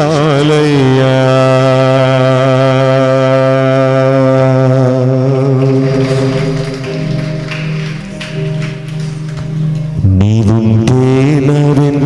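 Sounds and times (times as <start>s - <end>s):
man singing a long note: 0.0s - 6.9s, 10.0s - 12.0s
instrumental accompaniment: 5.4s - 12.0s.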